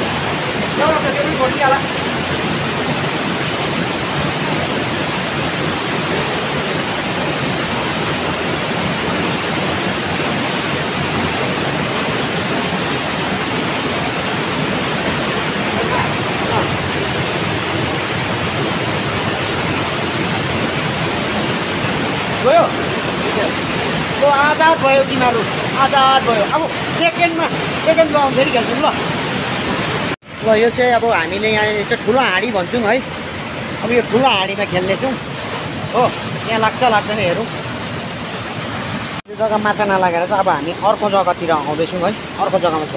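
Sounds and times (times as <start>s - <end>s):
mountain stream over stones: 0.0s - 42.9s
voices: 15.6s - 17.0s.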